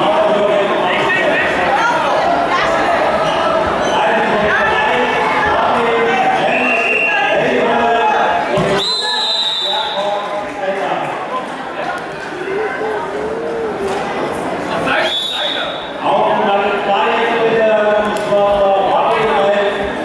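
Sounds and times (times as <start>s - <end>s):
spectators talking and calling out: 0.0s - 20.0s
referee's whistle: 6.5s - 7.2s, 8.8s - 10.0s, 15.0s - 15.9s.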